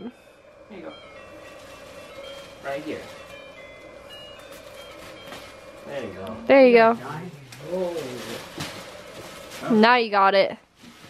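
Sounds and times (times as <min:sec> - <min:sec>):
steady low hum: 0:00.0 - 0:11.0
plastic wrap crinkling: 0:01.5 - 0:11.0.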